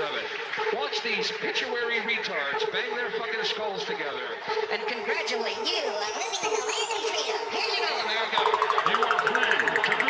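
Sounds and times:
electronic dance music: 0:08.4 - 0:10.0.

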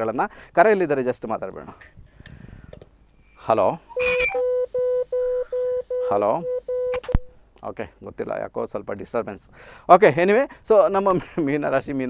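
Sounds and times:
telephone line click: 0:04.0 - 0:06.1
repeating telephone beep: 0:04.0 - 0:07.2.

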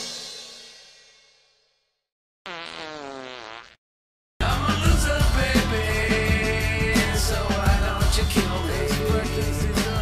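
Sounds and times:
background music: 0:04.4 - 0:10.0.

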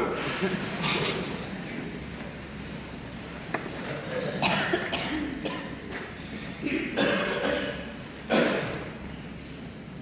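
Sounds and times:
man coughing and clearing throat: 0:04.1 - 0:05.8, 0:06.6 - 0:08.8.

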